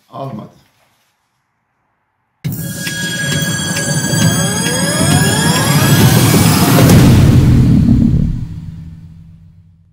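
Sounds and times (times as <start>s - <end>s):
riser of climbing tones: 2.4s - 9.7s
dense low rumble: 5.3s - 9.9s.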